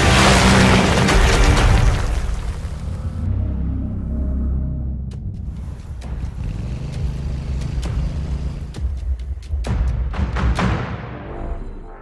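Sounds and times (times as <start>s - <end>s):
motorcycle engine rumbling: 5.4s - 9.2s.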